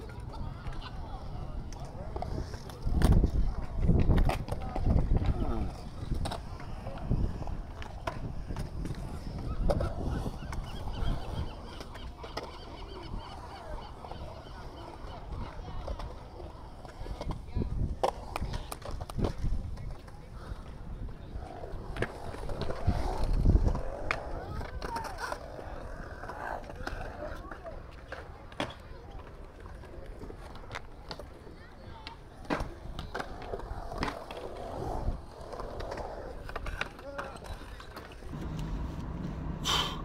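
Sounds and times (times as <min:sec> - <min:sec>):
skateboard clacks and knocks: 0:00.0 - 0:39.5
murmur of voices: 0:00.0 - 0:40.0
skateboard wheels rolling on concrete: 0:00.0 - 0:40.0.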